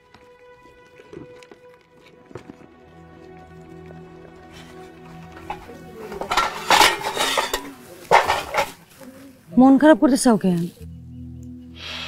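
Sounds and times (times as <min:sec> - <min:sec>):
metal pot and bowl clattering: 0:05.4 - 0:08.8.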